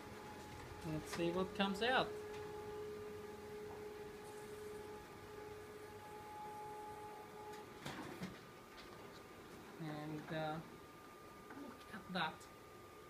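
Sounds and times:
printer humming and whining: 0.0 - 13.0.

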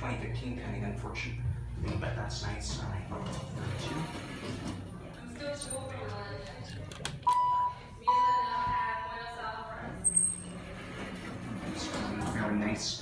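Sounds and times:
elevator chime tone: 7.3 - 9.0.

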